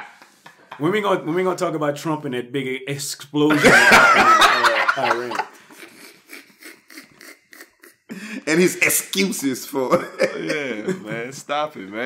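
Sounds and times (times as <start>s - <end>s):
quiet breathy laughter: 5.6s - 8.5s.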